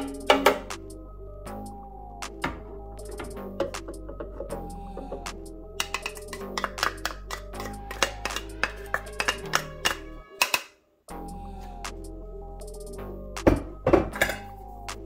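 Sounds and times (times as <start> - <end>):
instrumental background music: 0.0 - 15.0.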